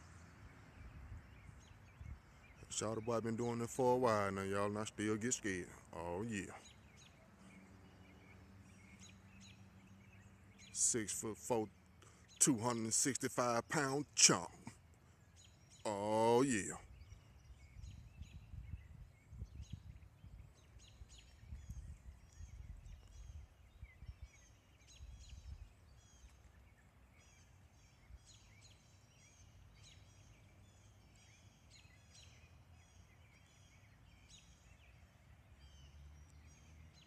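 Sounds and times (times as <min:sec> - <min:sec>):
songbirds chirping: 0:00.0 - 0:37.0
low rumble on microphone: 0:16.8 - 0:25.8.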